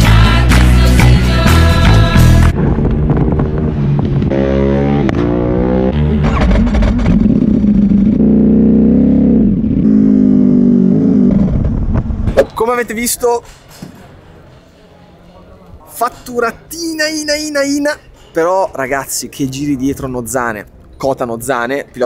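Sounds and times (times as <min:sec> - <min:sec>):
motorcycle engine revving: 0:02.4 - 0:12.3.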